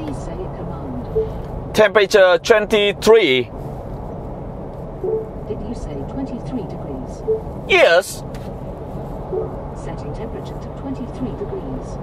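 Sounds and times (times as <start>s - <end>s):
road and engine noise: 0.0s - 12.0s.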